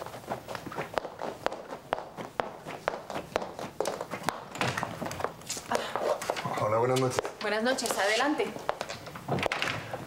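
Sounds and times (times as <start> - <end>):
footsteps on wooden floor: 0.0 - 10.0.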